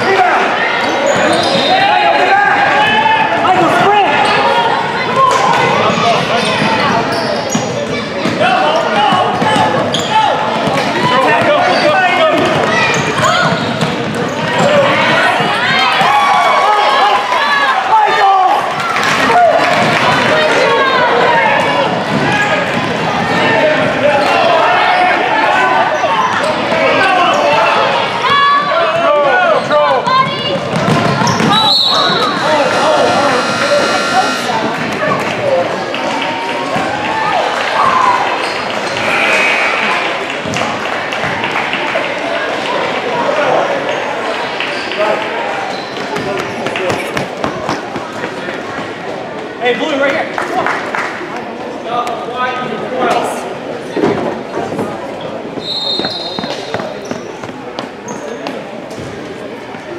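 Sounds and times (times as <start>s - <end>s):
players and spectators shouting: 0.0s - 40.2s
high whistle-like tone: 31.5s - 34.6s.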